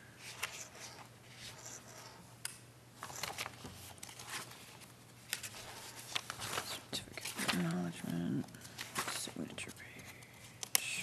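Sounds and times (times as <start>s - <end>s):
paper rustling: 0.2s - 2.1s, 3.0s - 10.7s.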